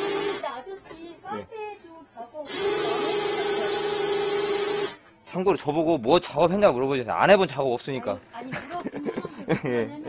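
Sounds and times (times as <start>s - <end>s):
cordless drill whining: 0.0s - 0.4s, 2.5s - 5.0s.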